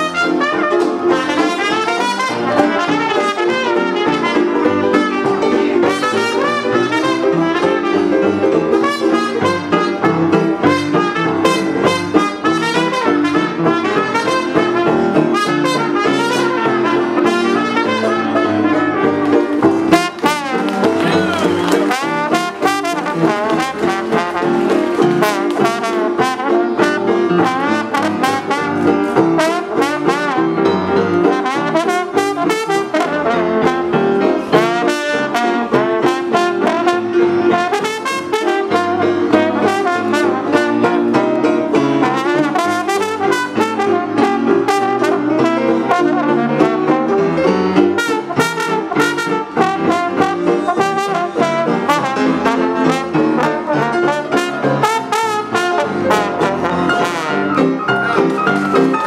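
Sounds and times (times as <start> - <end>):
jazz band playing: 0.0 - 59.0
trombone playing lead: 0.0 - 59.0.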